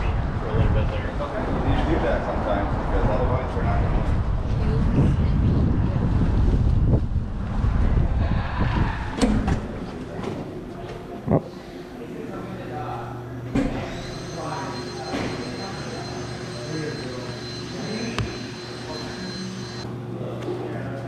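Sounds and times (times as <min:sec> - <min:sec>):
wind buffeting microphone: 0:00.0 - 0:09.7.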